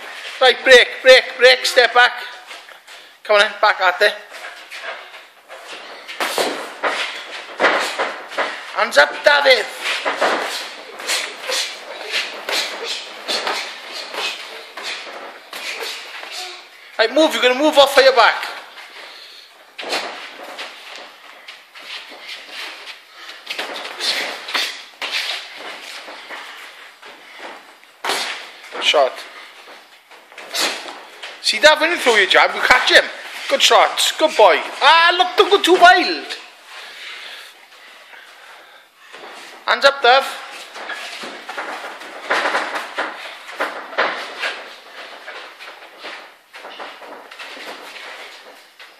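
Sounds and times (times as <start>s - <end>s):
faint room noise: 0.0s - 48.9s
boxing gloves thudding: 6.1s - 8.6s
shuffling and scuffing feet: 18.4s - 48.9s.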